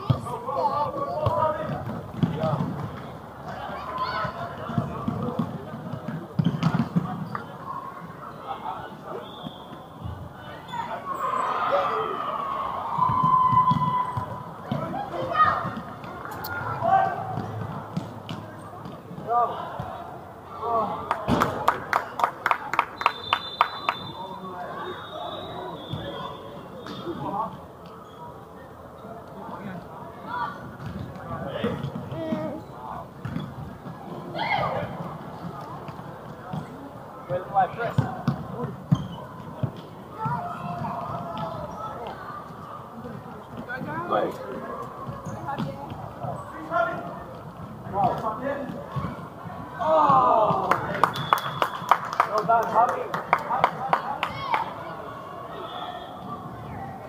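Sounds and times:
thuds of play on court: 4.3s - 7.4s, 21.2s - 21.8s
sports hall buzzer: 23.0s - 26.4s.

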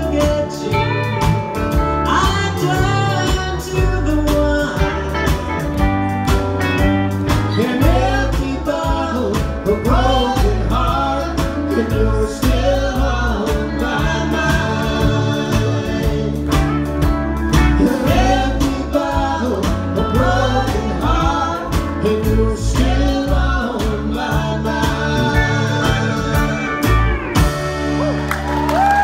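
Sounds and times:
person singing lead vocal: 0.0s - 5.8s, 7.4s - 28.1s
country band playing: 0.0s - 29.0s
drums keeping a steady beat: 0.0s - 29.0s
pedal steel guitar: 24.9s - 28.7s.

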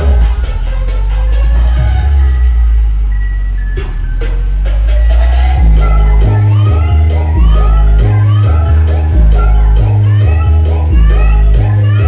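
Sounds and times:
loud music with heavy bass: 0.0s - 12.0s.

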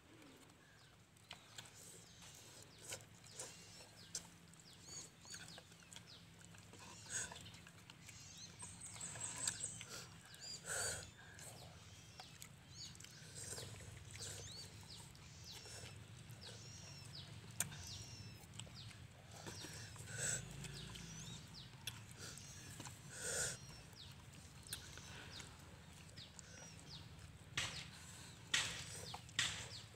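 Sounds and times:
small birds chirping: 0.0s - 29.9s.

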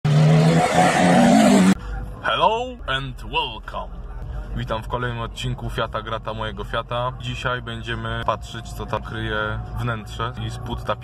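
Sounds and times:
car engine revving: 0.0s - 1.8s.

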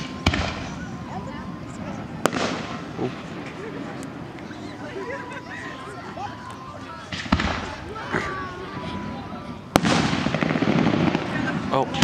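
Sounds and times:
fireworks bangs: 0.0s - 5.6s, 7.0s - 12.0s
fireworks crackle: 0.0s - 5.8s, 6.5s - 12.0s.

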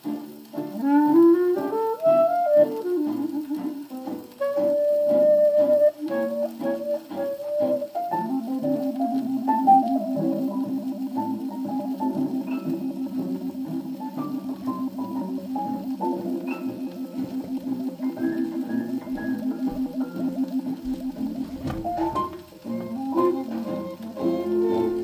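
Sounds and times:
swing jazz from phonograph: 0.0s - 25.0s.

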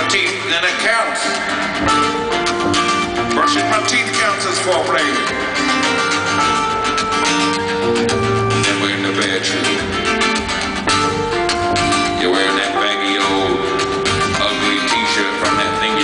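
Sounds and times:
acoustic guitars: 0.0s - 16.0s
keyboard playing: 0.0s - 16.0s.

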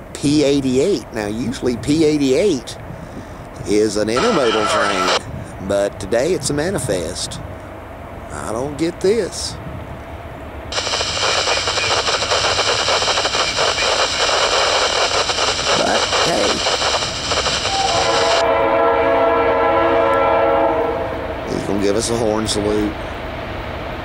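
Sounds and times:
locomotive air horn: 4.2s - 5.2s, 17.7s - 21.5s
loud hissing: 4.2s - 5.2s, 10.7s - 18.4s.

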